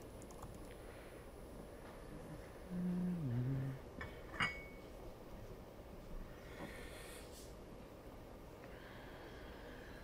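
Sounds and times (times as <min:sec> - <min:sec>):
man murmuring into microphone: 0:02.7 - 0:03.8.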